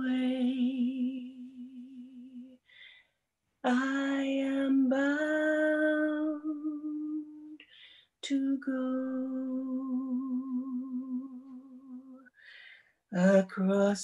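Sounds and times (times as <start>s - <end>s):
woman singing unaccompanied: 0.0s - 2.6s, 3.6s - 7.6s, 8.2s - 12.3s.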